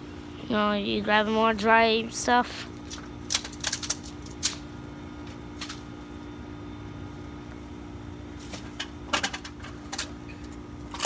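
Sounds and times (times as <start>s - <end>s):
steady low hum: 0.0s - 11.0s
campfire crackling: 1.7s - 9.1s.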